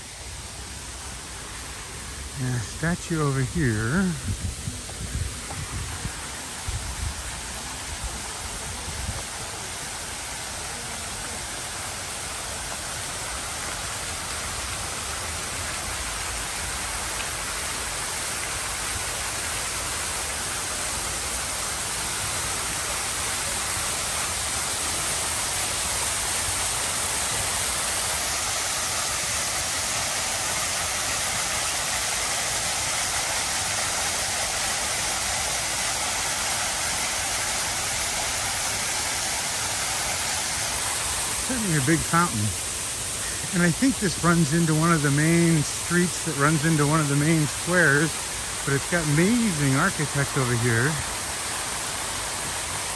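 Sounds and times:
fountain water splashing: 0:00.0 - 0:52.9.

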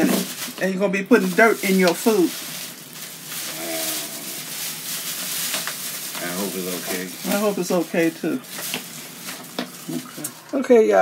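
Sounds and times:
plastic bag crinkling: 0:00.0 - 0:10.6.

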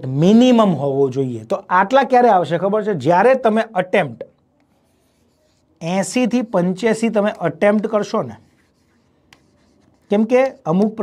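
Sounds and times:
person speaking: 0:00.0 - 0:11.0
marker writing on board: 0:03.2 - 0:11.0.

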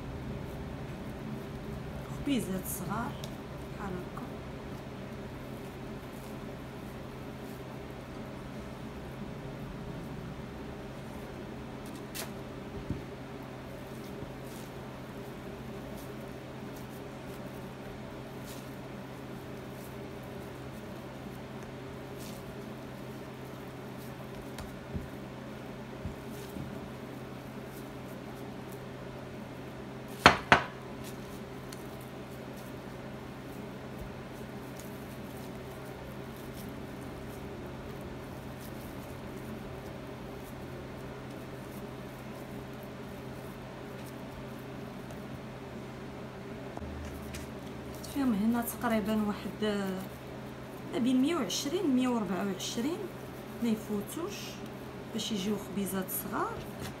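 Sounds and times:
dough being shaped by hand: 0:00.0 - 0:57.0
steady low hum: 0:00.0 - 0:57.0.

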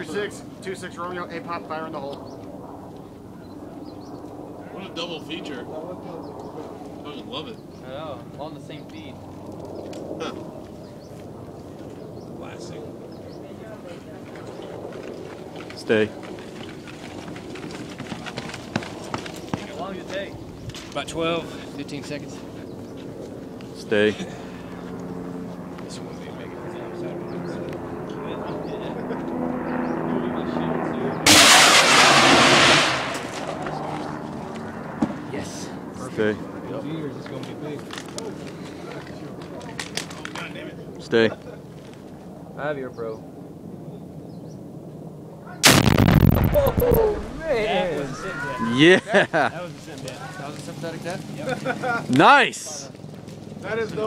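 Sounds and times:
steady outdoor hiss: 0:00.0 - 0:29.1, 0:35.3 - 0:54.0
footsteps on dirt path: 0:14.3 - 0:21.1
loud explosion with rumbling tail: 0:31.3 - 0:33.3, 0:45.6 - 0:47.8.

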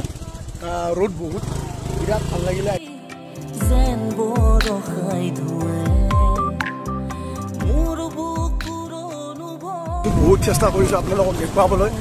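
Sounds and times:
motorcycle engine at low revs: 0:00.0 - 0:02.8.

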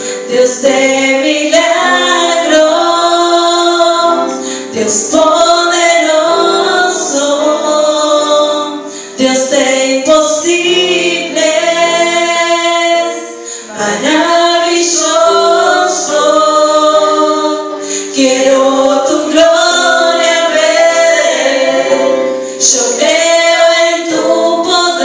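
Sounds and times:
women singing worship song: 0:00.0 - 0:25.0.

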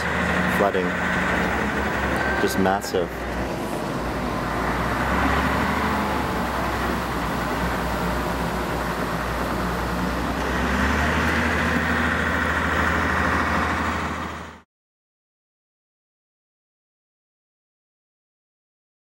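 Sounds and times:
heavy engine humming: 0:00.0 - 0:14.7
outdoor noise: 0:00.0 - 0:14.7.

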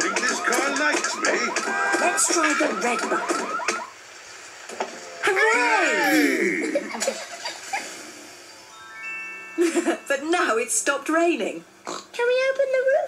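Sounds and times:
rising glockenspiel chime run: 0:08.4 - 0:10.7.

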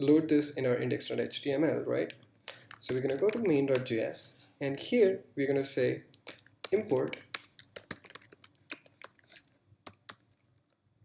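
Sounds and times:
keyboard typing: 0:02.5 - 0:03.9, 0:06.2 - 0:10.5.

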